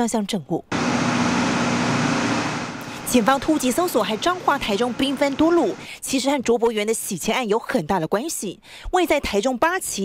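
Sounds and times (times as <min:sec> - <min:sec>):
machine hum: 0:00.7 - 0:05.9.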